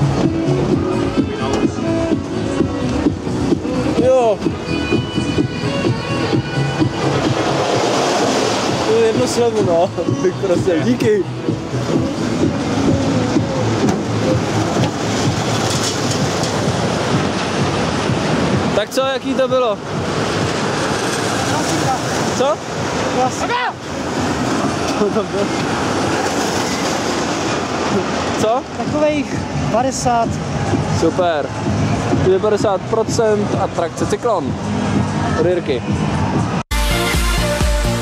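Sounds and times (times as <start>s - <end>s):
roller coaster wheels rumbling on rail: 11.5s - 33.1s.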